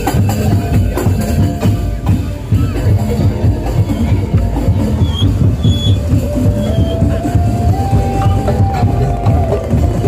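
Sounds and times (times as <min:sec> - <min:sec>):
drums playing busy rhythm: 0:00.0 - 0:10.0.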